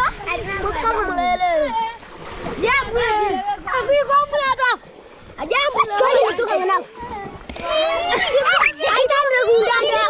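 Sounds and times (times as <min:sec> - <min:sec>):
water splashing: 0:00.0 - 0:10.0
children shouting: 0:05.4 - 0:10.0.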